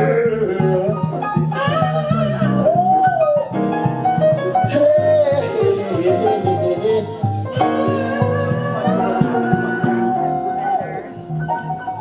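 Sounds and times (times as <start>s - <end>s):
bass: 0.0s - 12.0s
person singing: 0.0s - 12.0s
piano: 0.0s - 12.0s.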